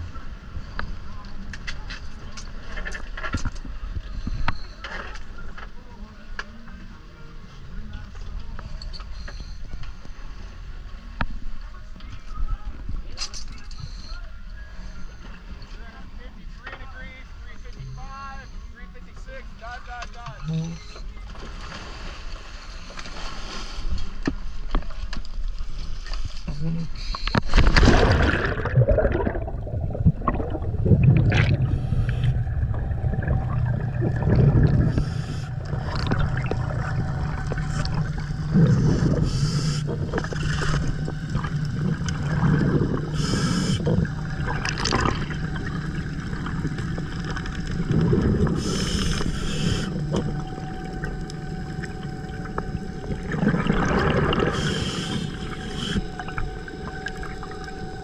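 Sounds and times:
steady low hum: 0:25.6 - 0:58.0
underwater rushing water and bubbles: 0:27.0 - 0:58.0
diver splashing into water: 0:27.5 - 0:31.7
gurgling bursts: 0:27.5 - 0:58.0.

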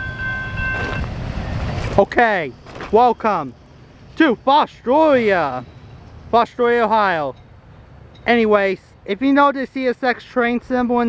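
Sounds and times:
high-pitched ringing tone: 0:00.0 - 0:08.4
freight train rumbling on rails: 0:00.0 - 0:11.0.

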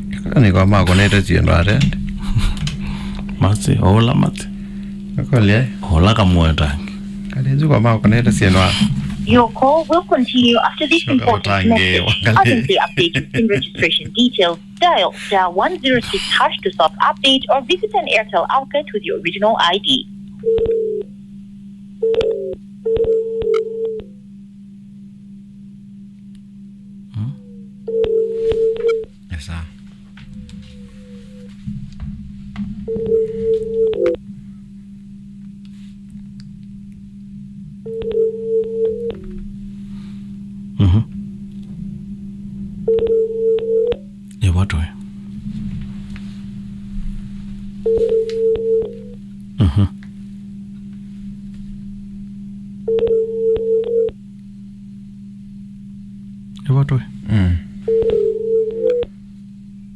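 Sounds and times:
steady pure tone: 0:00.0 - 0:22.8
low line hum: 0:00.0 - 0:59.9
telephone ringing tone: 0:16.4 - 0:21.0, 0:22.0 - 0:24.0, 0:27.9 - 0:29.0, 0:32.9 - 0:34.2, 0:37.8 - 0:39.2, 0:42.8 - 0:44.0, 0:47.8 - 0:49.2, 0:52.8 - 0:54.1, 0:57.9 - 0:59.1.

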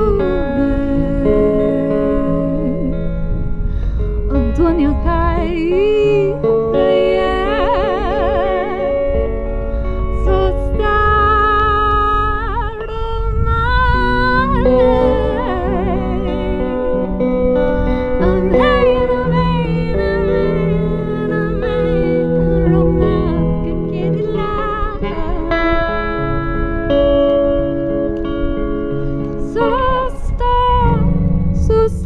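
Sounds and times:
woman singing with vibrato: 0:00.0 - 0:27.0, 0:29.4 - 0:32.0
electric guitar: 0:00.0 - 0:32.0.

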